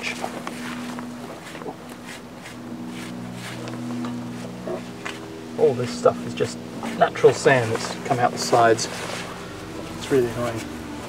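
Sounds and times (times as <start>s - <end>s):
steady low hum: 0.0s - 11.0s
trowel scraping through sand: 0.5s - 4.5s.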